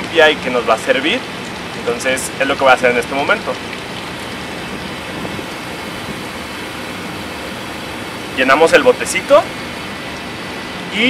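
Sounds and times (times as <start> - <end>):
water running into plastic bottle: 1.4 - 10.6.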